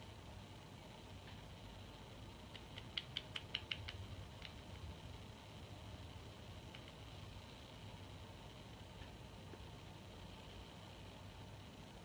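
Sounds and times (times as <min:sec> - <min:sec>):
small squeaky ticks: 0:02.5 - 0:04.6.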